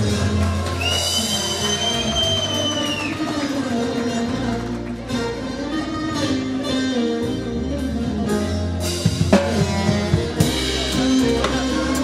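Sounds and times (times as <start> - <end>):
live band with electric saz: 0.0 - 12.0.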